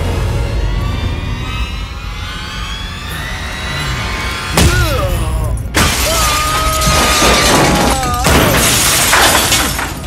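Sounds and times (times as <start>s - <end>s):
glass shattering: 5.7s - 10.0s.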